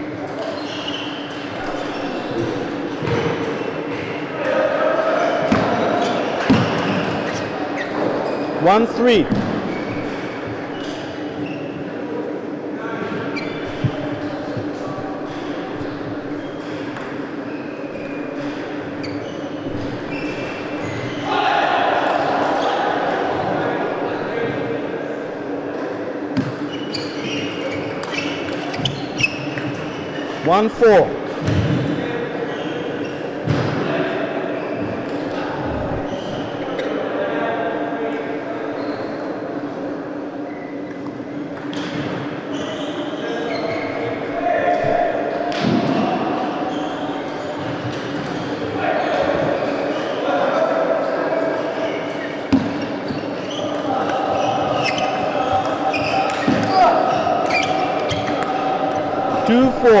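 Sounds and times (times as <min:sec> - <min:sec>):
voices echoing in a hall: 0:00.0 - 1:00.0.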